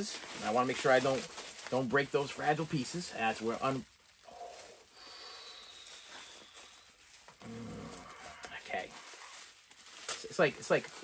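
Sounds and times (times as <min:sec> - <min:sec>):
bubble wrap rustling and crinkling: 0:00.0 - 0:11.0.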